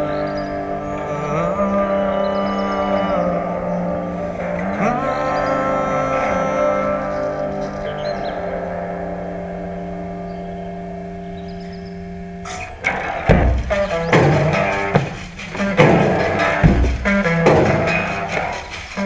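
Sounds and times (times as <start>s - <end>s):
held guitar chord ringing: 0.0s - 19.0s
rock band with drums and bass: 12.4s - 19.0s.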